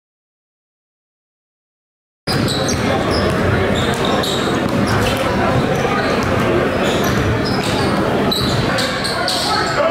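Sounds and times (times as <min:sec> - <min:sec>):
basketballs bouncing indoors: 0:02.3 - 0:09.7
voices talking in echoing gym: 0:02.3 - 0:09.9.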